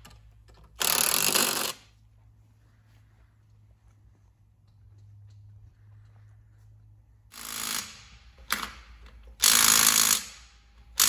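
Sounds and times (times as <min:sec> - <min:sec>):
impact wrench hammering: 0:00.0 - 0:01.9, 0:07.3 - 0:11.0.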